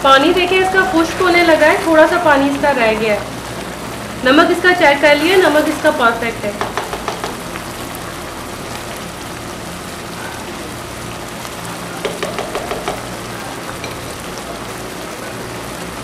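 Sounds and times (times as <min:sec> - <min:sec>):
rice boiling with crackling hiss: 0:00.0 - 0:16.0.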